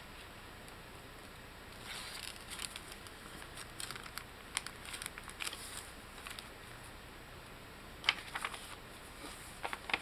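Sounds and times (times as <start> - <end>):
paper rustling and crinkling: 1.8 - 6.5, 8.0 - 10.0.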